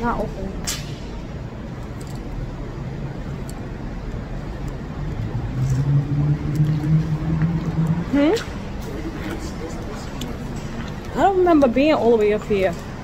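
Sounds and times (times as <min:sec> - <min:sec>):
car engine rumbling: 0:00.0 - 0:11.5.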